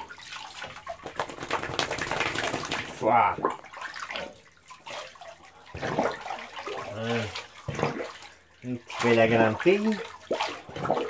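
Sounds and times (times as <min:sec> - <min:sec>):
bathwater sloshing and splashing: 0:00.0 - 0:11.0.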